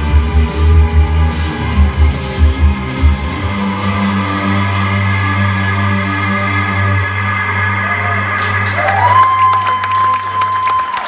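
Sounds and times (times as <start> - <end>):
crowd cheering and clapping: 7.6 - 11.0.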